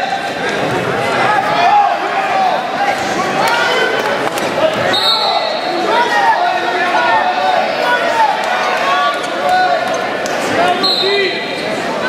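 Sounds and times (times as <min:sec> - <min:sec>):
people shouting in echoing gym: 0:00.0 - 0:12.0.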